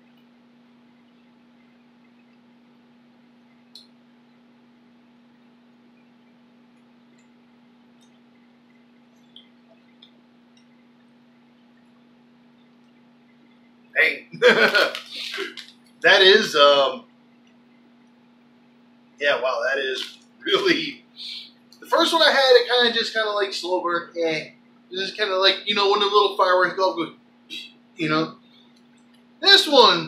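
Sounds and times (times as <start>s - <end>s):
low electrical hum: 0.0s - 30.0s.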